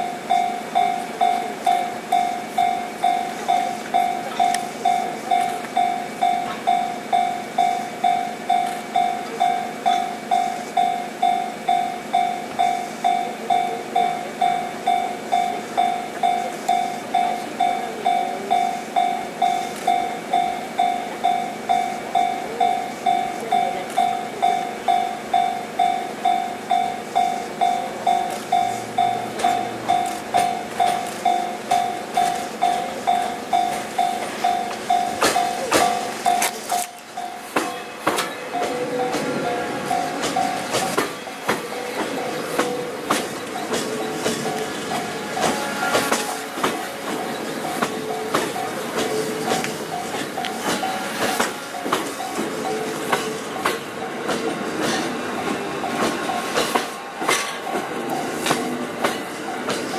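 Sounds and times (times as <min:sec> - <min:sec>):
approaching train: 0:00.0 - 0:59.9
level-crossing alarm bell: 0:00.0 - 0:59.9.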